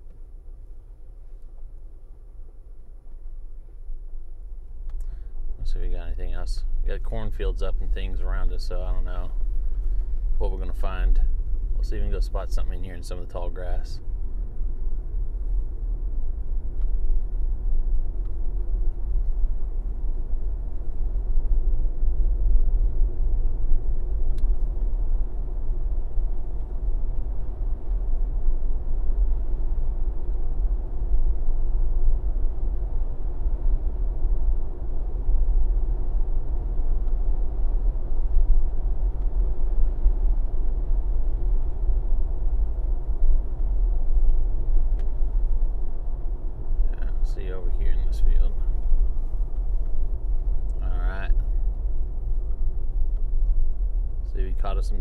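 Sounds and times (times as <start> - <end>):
road and engine rumble in car: 0.0 - 55.0.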